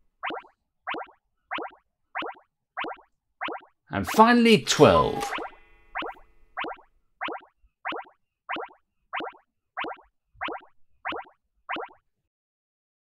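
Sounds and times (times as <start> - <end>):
cartoon pop sound effects: 0.2 - 3.7, 5.2 - 12.0.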